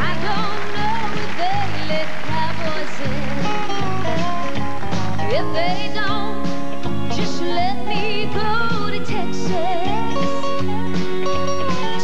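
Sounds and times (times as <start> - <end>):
country band with guitar: 0.0 - 12.0.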